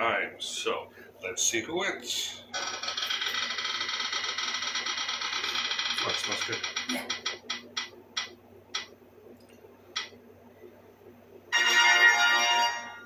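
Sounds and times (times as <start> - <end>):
spinning wheel app ticking: 2.6 - 8.9.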